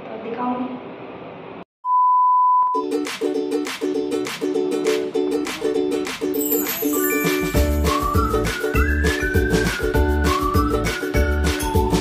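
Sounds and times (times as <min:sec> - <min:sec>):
background music: 0:02.8 - 0:12.0.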